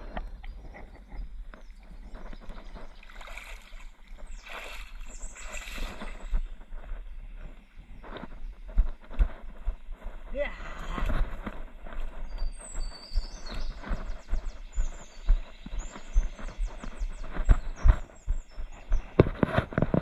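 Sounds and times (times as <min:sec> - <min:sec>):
low wind and handling rumble: 0:00.0 - 0:20.0
footsteps on grass: 0:01.6 - 0:20.0.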